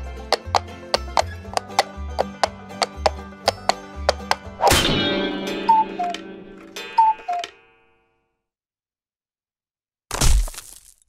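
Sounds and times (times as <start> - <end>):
ringing hit: 4.6 - 7.8.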